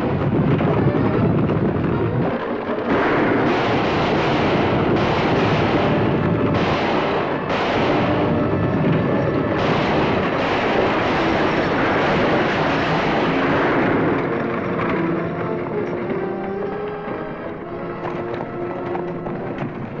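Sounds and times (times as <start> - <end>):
gunshots: 0.0 - 17.0
film music: 0.0 - 20.0
horses galloping: 0.0 - 20.0
stagecoach wheels rumbling: 0.0 - 20.0.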